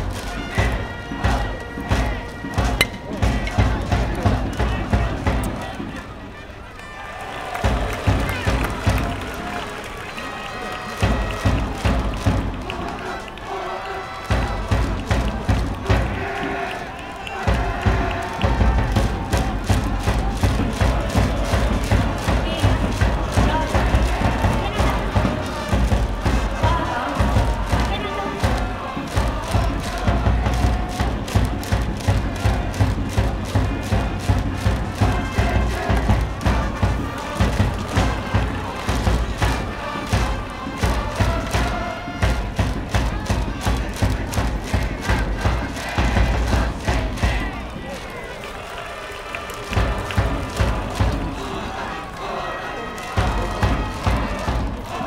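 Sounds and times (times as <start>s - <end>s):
heavy drum beats: 0.0s - 6.2s, 7.4s - 9.7s, 11.0s - 48.2s, 49.2s - 55.0s
students chanting in unison: 0.0s - 6.6s, 7.2s - 55.0s
brass band playing a cheer song: 0.0s - 55.0s.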